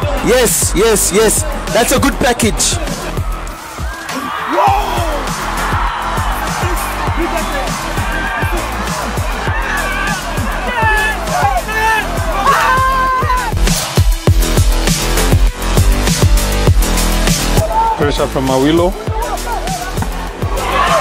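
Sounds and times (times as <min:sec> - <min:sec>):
voices shouting: 0:00.0 - 0:14.0, 0:17.5 - 0:18.3, 0:19.0 - 0:21.0
crowd cheering: 0:00.0 - 0:14.2, 0:17.4 - 0:18.2, 0:19.2 - 0:21.0
music with thudding beat: 0:13.3 - 0:17.7, 0:18.9 - 0:21.0.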